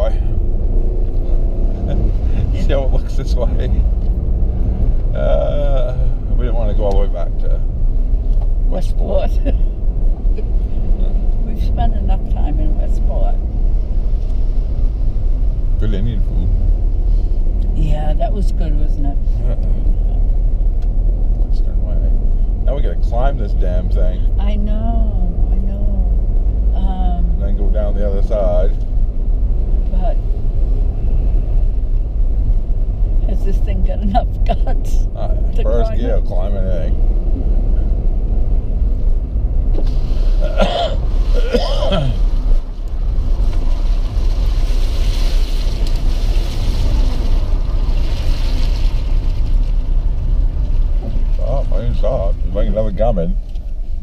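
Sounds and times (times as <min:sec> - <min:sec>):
people talking: 0:00.0 - 0:00.3, 0:01.8 - 0:03.9, 0:05.2 - 0:07.6, 0:08.7 - 0:09.6, 0:11.0 - 0:13.4, 0:15.8 - 0:16.5, 0:17.8 - 0:19.8, 0:21.4 - 0:22.1, 0:22.7 - 0:26.2, 0:26.8 - 0:28.8, 0:29.9 - 0:30.2, 0:33.2 - 0:37.0, 0:40.4 - 0:42.2, 0:51.4 - 0:53.4
car engine and tyres rumbling: 0:00.0 - 0:54.0.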